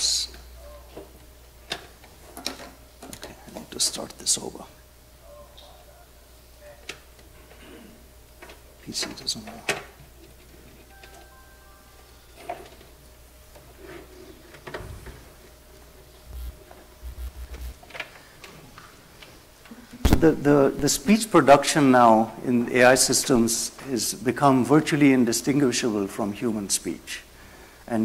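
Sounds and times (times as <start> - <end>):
low steady hum: 0.0 - 28.0.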